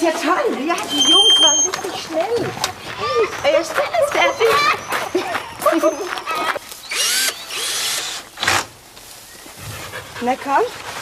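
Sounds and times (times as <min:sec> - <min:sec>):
hens clucking and cackling: 0:03.8 - 0:06.7.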